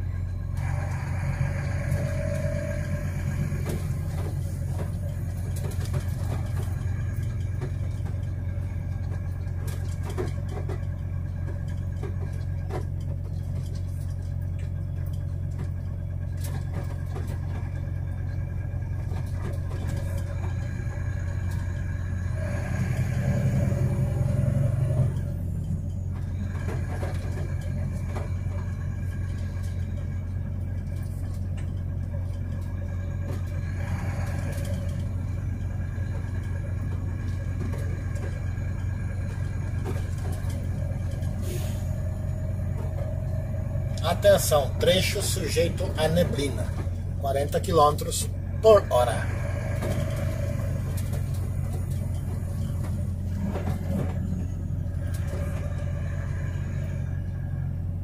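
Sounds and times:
truck engine and road drone: 0.0 - 58.0.

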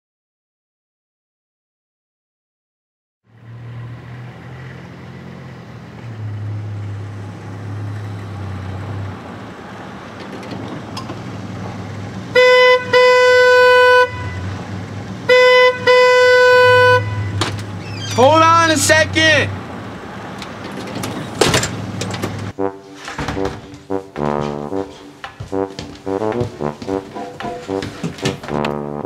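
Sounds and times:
van engine idling: 5.8 - 22.6
car horn honking: 12.3 - 19.6.

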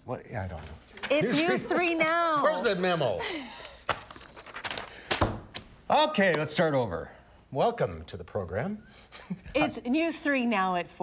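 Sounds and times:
paper rustling: 0.6 - 2.0, 3.6 - 5.7.

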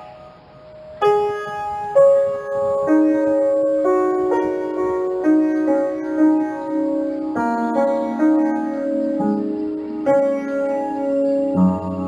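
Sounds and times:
gentle piano music: 0.0 - 12.0.

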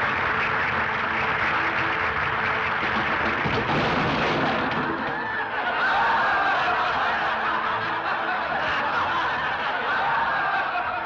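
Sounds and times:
audience laughing: 4.3 - 11.0.

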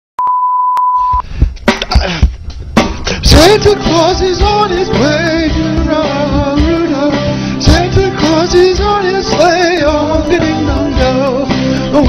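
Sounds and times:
electronic test-tone beep: 0.2 - 1.2
music with drum hits: 1.2 - 12.0.

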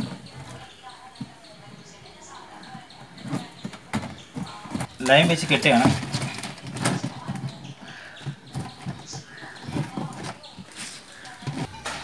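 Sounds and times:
knocks and rubbing on box: 2.9 - 12.0.

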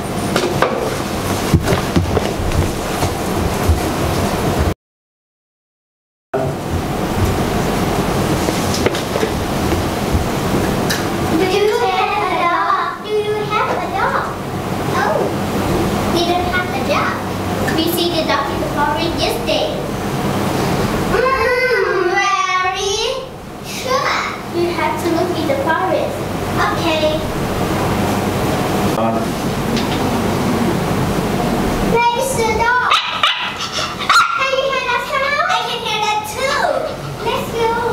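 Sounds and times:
children's voices: 11.3 - 15.4, 21.1 - 27.3, 31.8 - 37.9
loud rushing noise: 26.2 - 33.4.

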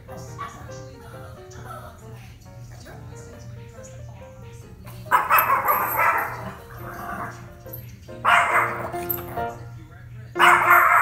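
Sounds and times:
background music: 0.0 - 11.0
small dog barking rapidly: 0.1 - 0.8, 5.1 - 7.4, 8.2 - 9.1, 10.4 - 11.0.

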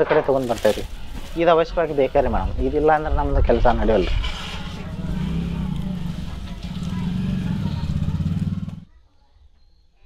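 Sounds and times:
small engine running: 4.3 - 8.9.

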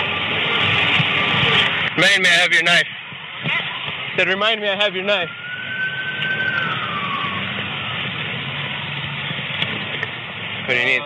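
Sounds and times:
emergency vehicle siren: 0.0 - 10.6
low vehicle rumble: 0.0 - 11.0.

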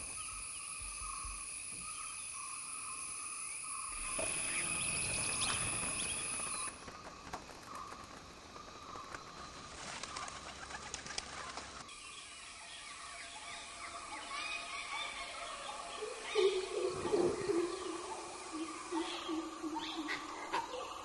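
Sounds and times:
insects buzzing: 0.0 - 21.0
birds calling: 3.4 - 21.0.

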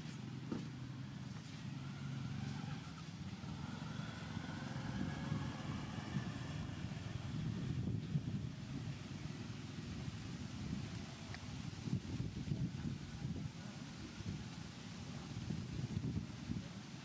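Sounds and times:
faint engine whine: 0.0 - 17.0
vehicle engine running: 0.0 - 17.0.

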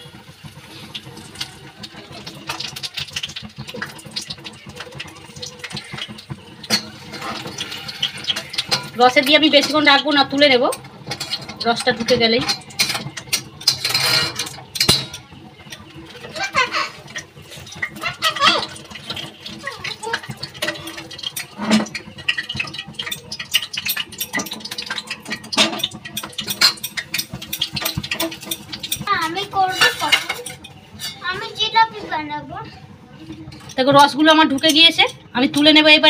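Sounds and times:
metal spoon clinking on pots: 0.0 - 31.8, 33.1 - 36.0
child's voice: 19.6 - 20.3, 29.0 - 30.5, 31.2 - 32.8.

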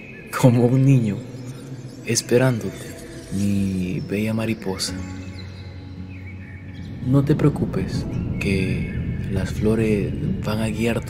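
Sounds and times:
faint bird chirps: 0.0 - 11.0
soft background music: 0.0 - 11.0.

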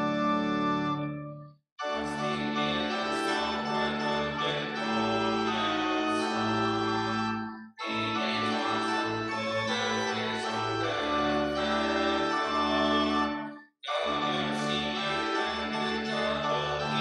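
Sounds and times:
church organ playing a hymn: 0.0 - 17.0.

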